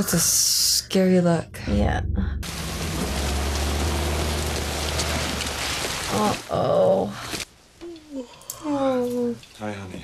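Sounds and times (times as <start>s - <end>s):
heavy rain: 2.4s - 7.4s.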